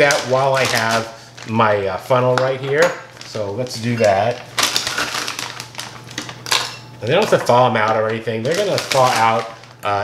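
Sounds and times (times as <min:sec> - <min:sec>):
frozen berries rattling into glass jar: 0:03.2 - 0:10.0.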